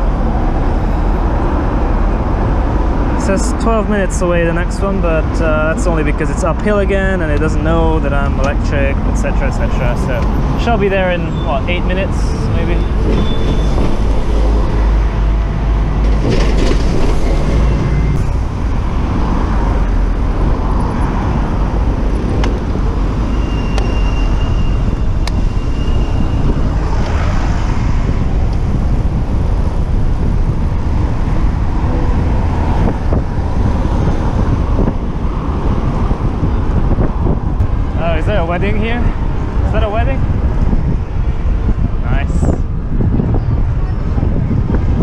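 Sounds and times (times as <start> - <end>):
cars and buses passing: 0.0 - 45.0
city road traffic: 0.0 - 45.0
heavy low rumble: 0.0 - 45.0.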